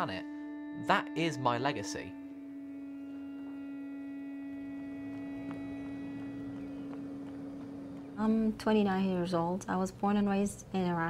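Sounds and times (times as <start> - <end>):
low ambient drone: 0.0 - 10.8
faint higher tones: 0.8 - 9.6.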